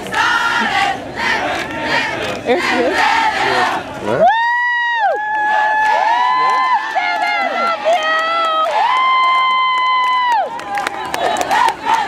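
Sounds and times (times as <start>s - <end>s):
crowd shouting and cheering: 0.0s - 12.0s
loud high-pitched cheer: 4.1s - 12.0s.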